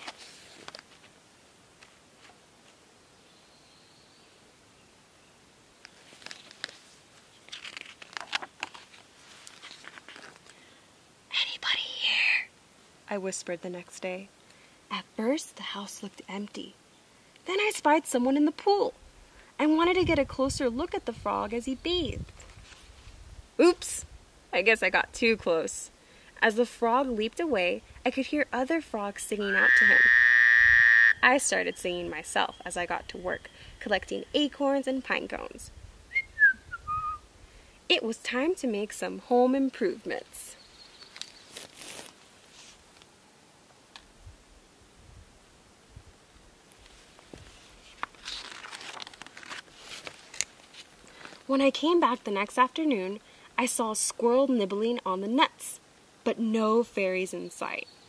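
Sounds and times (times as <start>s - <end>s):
woman whispering: 11.3s - 12.5s
woman whistling descending notes: 36.1s - 37.2s.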